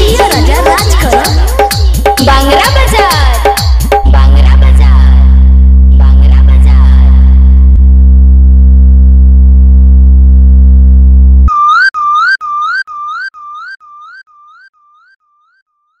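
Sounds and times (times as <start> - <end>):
loud bass drone: 4.0 - 11.5
rising synth chirp: 11.4 - 15.6.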